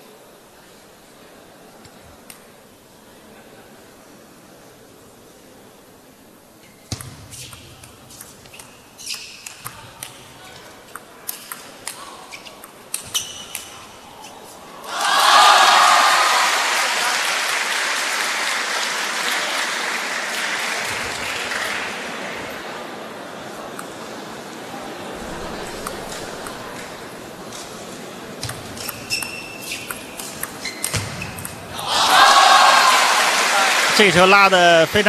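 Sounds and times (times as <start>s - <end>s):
crowd cheering and applause: 14.8s - 22.7s, 31.7s - 35.0s
table tennis ball clicking: 28.4s - 31.6s.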